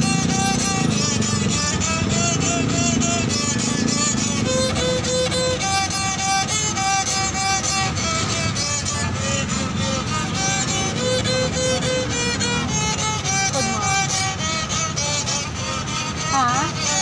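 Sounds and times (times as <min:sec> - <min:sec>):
bowed fiddle melody: 0:00.0 - 0:17.0.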